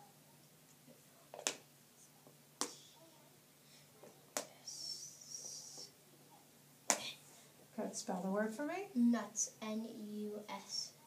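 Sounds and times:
soft high hiss: 0.0 - 11.0.

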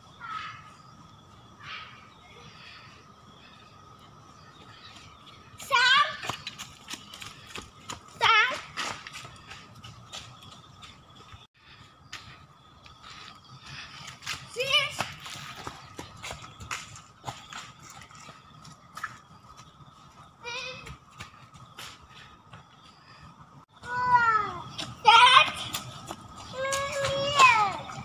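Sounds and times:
footsteps crunching dry leaves: 13.0 - 19.1.

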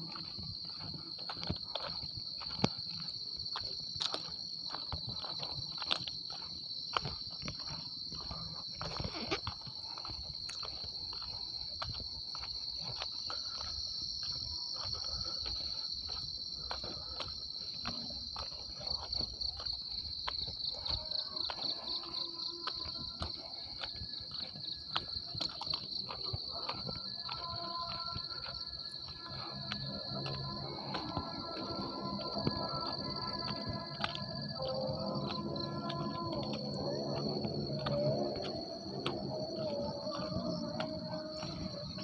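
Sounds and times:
footsteps crunching on ballast: 0.0 - 42.0
insects droning shrilly: 0.0 - 42.0.

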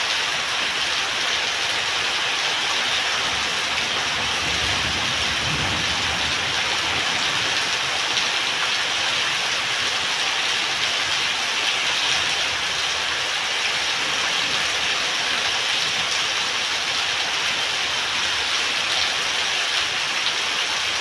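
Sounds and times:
heavy rain on concrete and roofs: 0.0 - 21.0.

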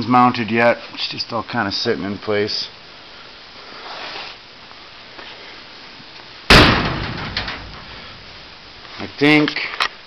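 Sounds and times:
steel van door slamming: 6.5 - 8.4.

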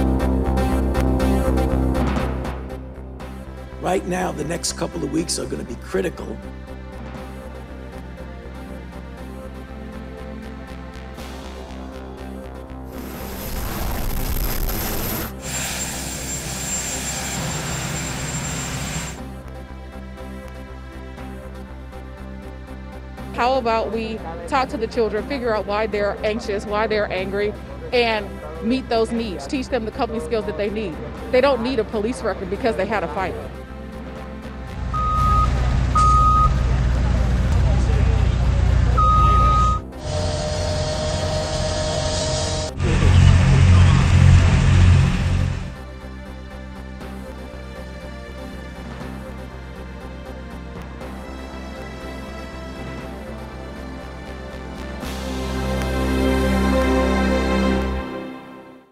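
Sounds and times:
helicopter turbine engines running: 13.8 - 19.3, 40.2 - 45.8
high warning alarm beeping: 15.4 - 19.2, 34.8 - 36.6, 38.9 - 42.8
steady hum: 34.7 - 45.8
heavy machinery engine rumble: 34.8 - 45.8.

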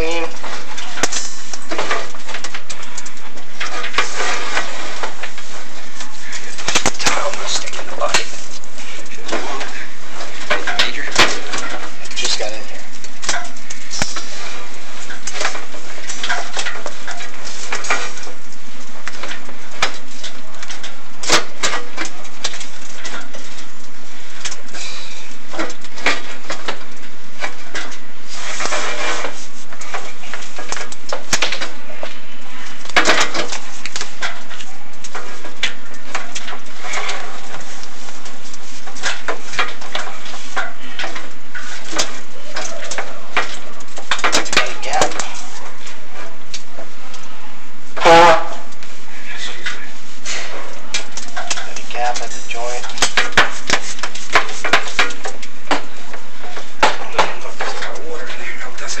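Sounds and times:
constant hiss and hum: 0.0 - 59.0.

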